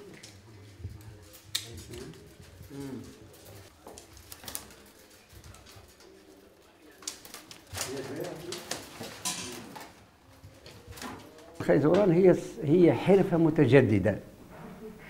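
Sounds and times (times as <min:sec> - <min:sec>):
cane strands clicking and crackling: 0:00.0 - 0:12.6.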